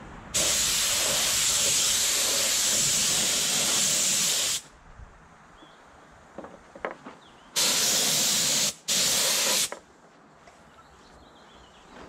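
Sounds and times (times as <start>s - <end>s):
paint spray gun hissing: 0.4s - 4.7s, 7.6s - 9.8s.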